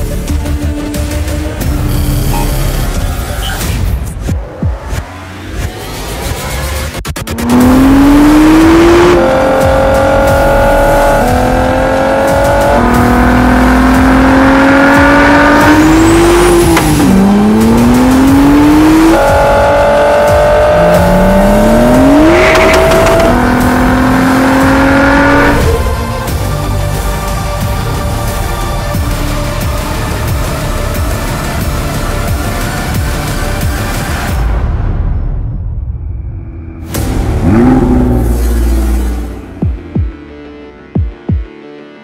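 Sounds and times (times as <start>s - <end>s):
sports car engine accelerating: 4.8s - 27.1s, 36.7s - 39.6s.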